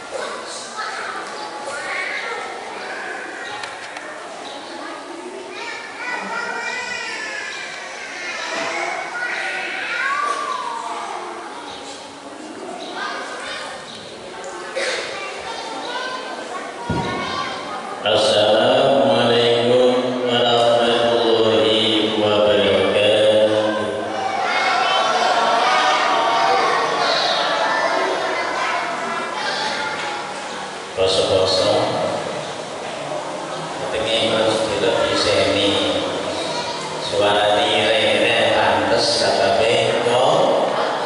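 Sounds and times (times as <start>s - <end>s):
children's voices: 0.0s - 41.0s
people talking: 0.0s - 41.0s.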